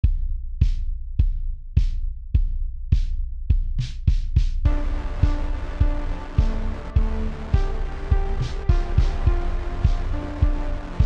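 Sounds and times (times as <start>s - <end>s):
kick drum thumping: 0.0s - 11.0s
low bass hum: 4.6s - 11.0s.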